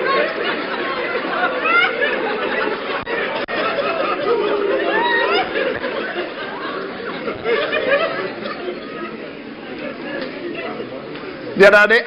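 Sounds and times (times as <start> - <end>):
audience laughing and chattering: 0.0 - 12.0.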